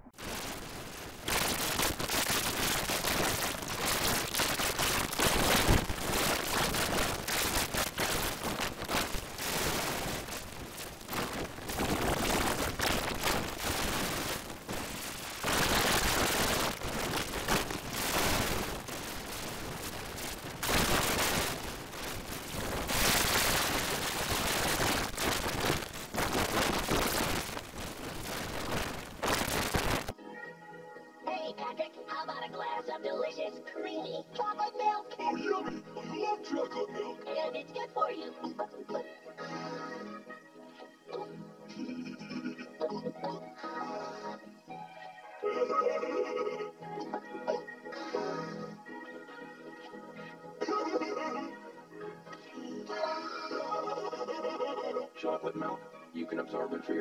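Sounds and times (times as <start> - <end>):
crackling digital noise: 0.0 - 30.2, 37.2 - 57.0.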